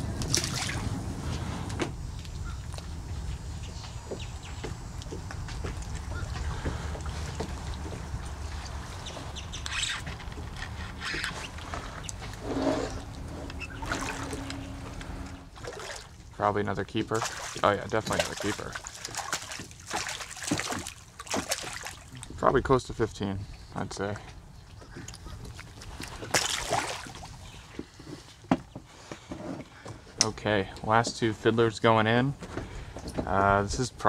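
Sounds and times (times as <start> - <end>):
water splashes: 0.0 - 3.6, 4.5 - 10.6, 11.2 - 22.6, 25.0 - 27.7
steady low rumble: 0.0 - 17.2
water lapping against kayak hull: 0.0 - 22.6, 24.7 - 29.8.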